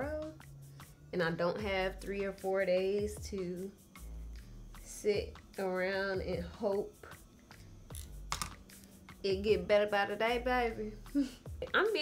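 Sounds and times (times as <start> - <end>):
fingers clicking in hair: 7.9 - 8.8.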